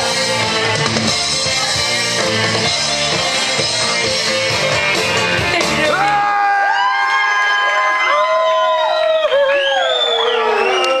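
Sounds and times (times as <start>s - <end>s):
crowd cheering and whooping: 5.2s - 11.0s.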